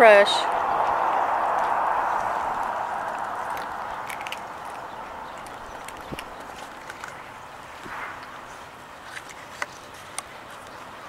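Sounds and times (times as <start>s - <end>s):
steady outdoor hiss: 0.0s - 11.0s
cat crunching dry treats: 3.4s - 10.8s.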